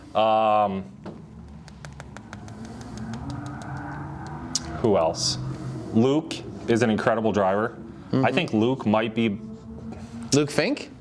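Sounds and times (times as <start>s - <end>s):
marker tapping on whiteboard: 1.0s - 3.9s.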